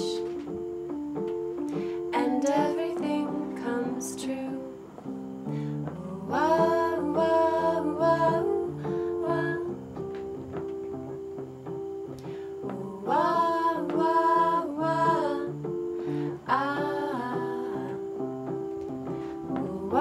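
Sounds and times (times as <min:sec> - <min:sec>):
keyboard melody of held notes: 0:00.0 - 0:20.0
women singing together: 0:02.1 - 0:05.1, 0:05.8 - 0:09.8, 0:12.6 - 0:18.2, 0:19.2 - 0:20.0.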